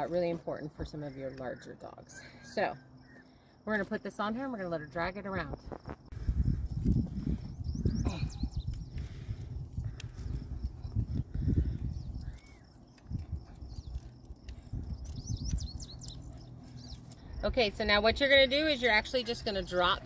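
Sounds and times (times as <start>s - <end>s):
wind rumbling on microphone: 5.4s - 20.0s.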